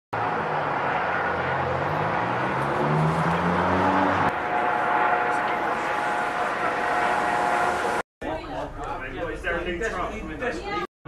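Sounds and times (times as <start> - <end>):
engine drone: 0.1 - 8.0
street noise: 0.1 - 10.7.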